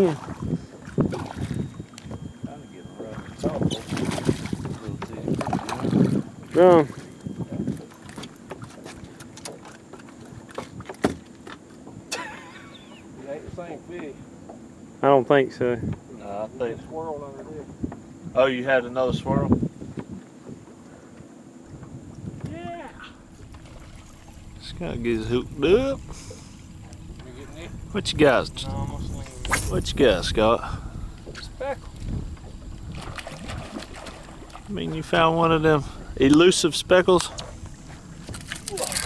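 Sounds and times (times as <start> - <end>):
wind rumble on microphone: 0.0 - 8.7, 15.7 - 20.8, 21.6 - 39.0
faint steady hum: 0.0 - 39.0
fishing rod and reel clicks: 38.3 - 39.0.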